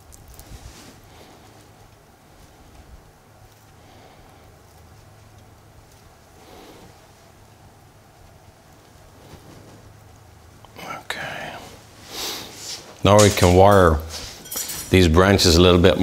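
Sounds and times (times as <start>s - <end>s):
rustling of branches: 0.0s - 16.0s
steady low hum: 0.0s - 16.0s
breathy whispered vocal sound: 10.7s - 11.9s.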